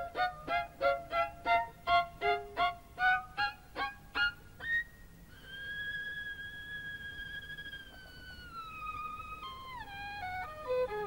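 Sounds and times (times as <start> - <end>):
solo violin: 0.0 - 11.0.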